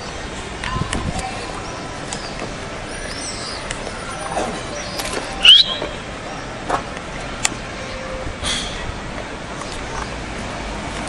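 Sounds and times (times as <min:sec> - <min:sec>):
birds chirping: 0:01.2 - 0:06.6.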